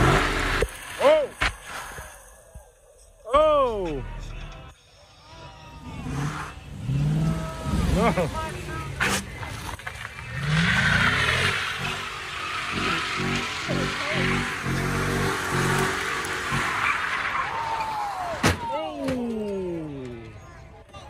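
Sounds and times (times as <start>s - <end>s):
car engine revving: 0.0s - 1.0s, 5.8s - 18.2s
tires screeching: 0.0s - 2.5s, 5.6s - 20.6s.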